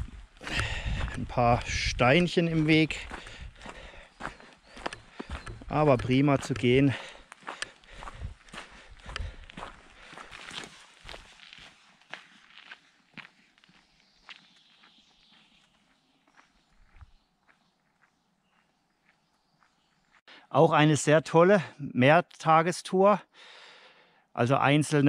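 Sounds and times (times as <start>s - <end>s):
footsteps on dirt path: 0.0s - 20.3s.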